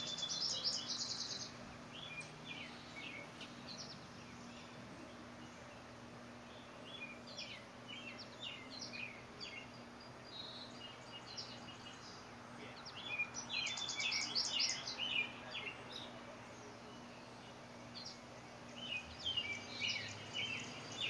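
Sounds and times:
birds chirping: 0:00.0 - 0:21.0
faint low hum: 0:00.0 - 0:21.0
outdoor background noise: 0:00.0 - 0:21.0.

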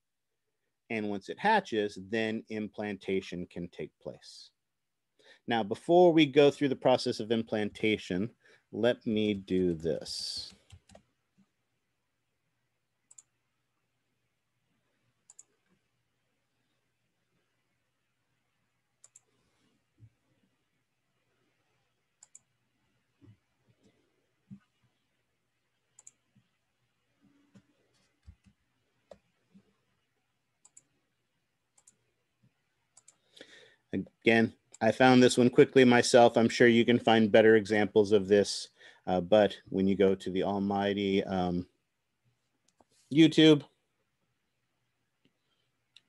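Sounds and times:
person speaking: 0:00.9 - 0:04.6, 0:05.4 - 0:10.8, 0:33.9 - 0:41.7, 0:42.8 - 0:43.8
computer mouse clicks: 0:13.1 - 0:13.4, 0:15.2 - 0:15.8, 0:19.0 - 0:19.4, 0:22.2 - 0:22.5, 0:25.9 - 0:26.5, 0:30.6 - 0:30.9, 0:31.8 - 0:32.0, 0:32.9 - 0:33.4.

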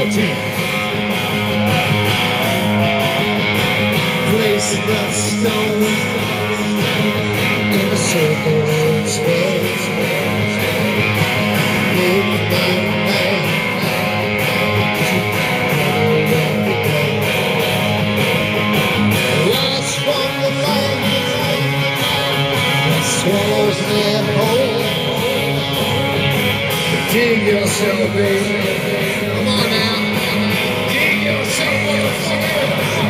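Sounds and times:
bass guitar: 0:00.0 - 0:33.0
distorted electric guitar: 0:00.0 - 0:33.0
drums: 0:00.0 - 0:33.0.

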